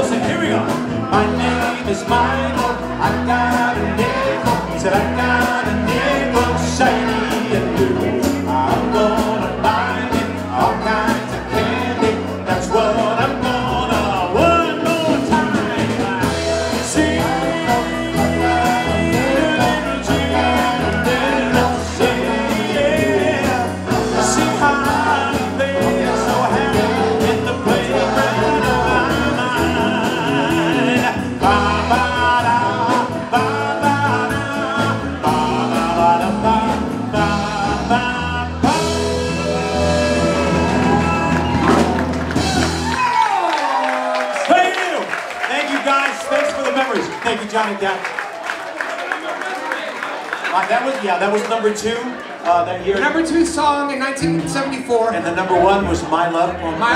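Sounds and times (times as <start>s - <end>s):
person singing: 0.0s - 43.3s
live pop band music: 0.0s - 48.0s, 49.9s - 56.9s.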